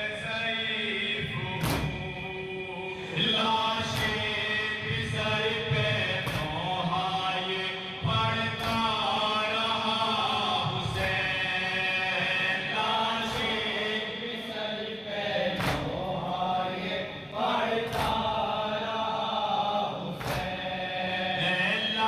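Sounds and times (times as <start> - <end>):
men chanting together: 0.0 - 22.0
hands slapping chests: 1.6 - 2.0, 6.2 - 6.6, 15.6 - 16.0, 17.9 - 18.3, 20.2 - 20.6.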